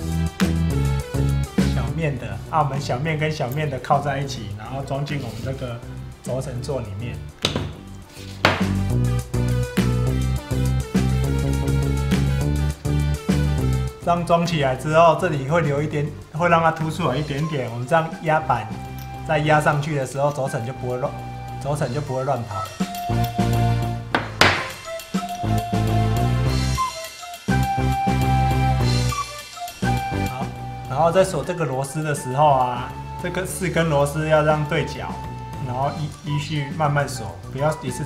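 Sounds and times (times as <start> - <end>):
background music: 0.0 - 38.0
metal plate thunking on workbench: 7.4 - 7.8, 8.4 - 8.8, 24.2 - 24.8.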